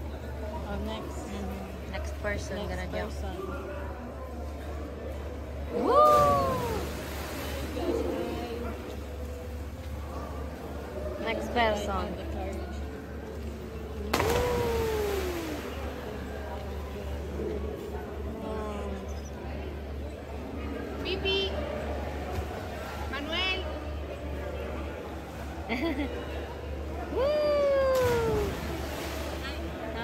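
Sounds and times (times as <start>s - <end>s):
splash into water: 14.1s - 16.1s, 27.9s - 29.6s.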